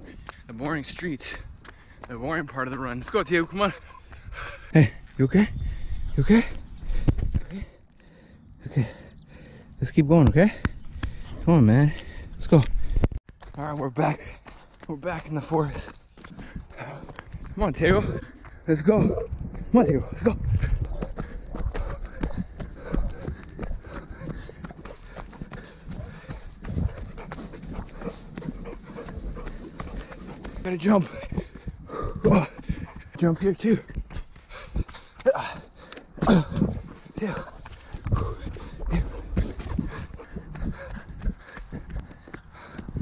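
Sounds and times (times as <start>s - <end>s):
running footfalls on dirt trail: 0.0s - 43.0s
breathing: 1.6s - 2.1s, 3.9s - 4.7s, 5.6s - 9.8s, 10.5s - 13.2s, 16.2s - 17.4s, 20.6s - 33.1s, 34.2s - 36.1s, 37.3s - 43.0s.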